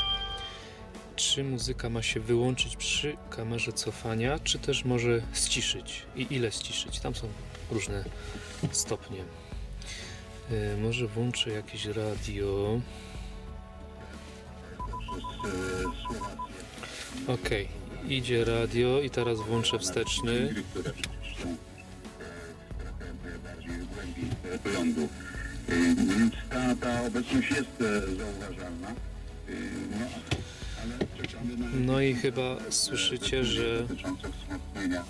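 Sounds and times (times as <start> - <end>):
car radio music: 0.0 - 0.6, 14.8 - 16.8, 19.0 - 21.8
short high beeps: 0.0 - 0.6, 14.8 - 16.5, 19.2 - 20.3
music with voice from car radio: 1.4 - 13.2, 14.2 - 35.0.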